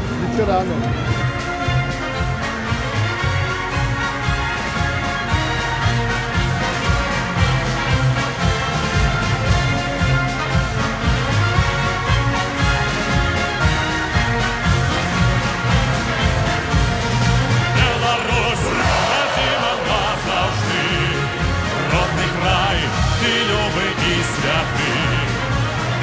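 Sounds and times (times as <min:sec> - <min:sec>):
brass band playing march: 0:00.0 - 0:26.0.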